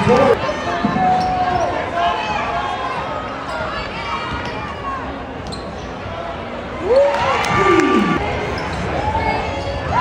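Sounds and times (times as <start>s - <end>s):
spectator noise: 6.8s - 8.3s.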